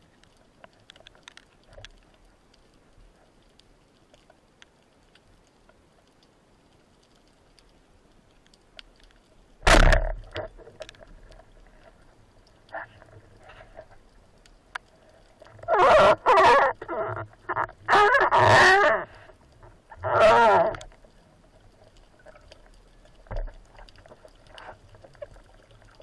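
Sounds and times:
speargun firing underwater: 0:09.6 - 0:10.2.

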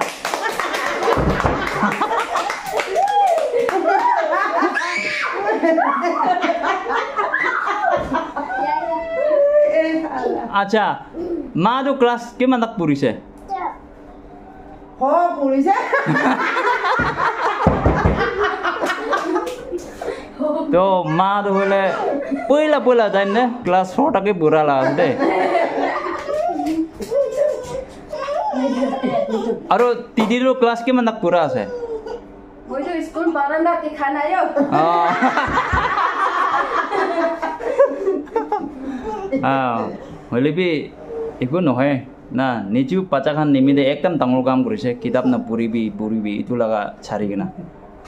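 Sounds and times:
people clapping: 0:00.0 - 0:04.4, 0:17.0 - 0:19.9, 0:26.0 - 0:28.0
excited voices and laughter: 0:00.5 - 0:10.6, 0:15.6 - 0:24.0, 0:24.6 - 0:30.6, 0:31.4 - 0:40.2.

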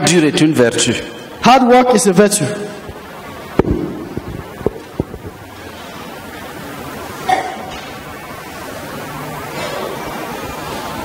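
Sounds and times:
steady room noise: 0:00.0 - 0:11.0
sharp knocks: 0:03.6 - 0:05.3.

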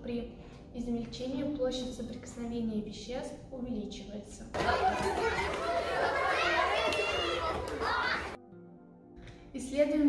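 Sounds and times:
crowd chattering: 0:04.6 - 0:08.4.

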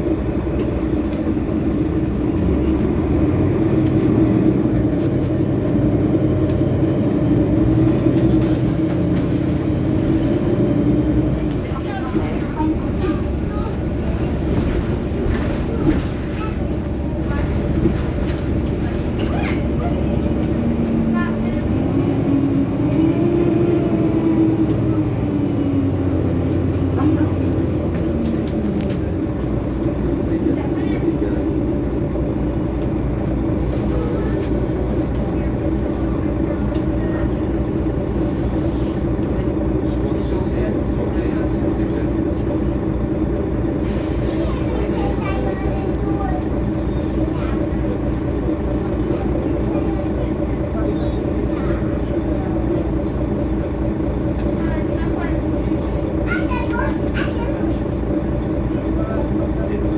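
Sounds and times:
bus engine droning: 0:00.0 - 0:59.9.

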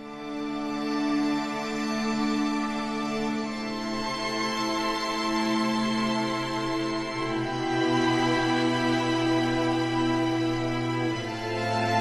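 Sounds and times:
music of long held notes: 0:00.0 - 0:12.0.

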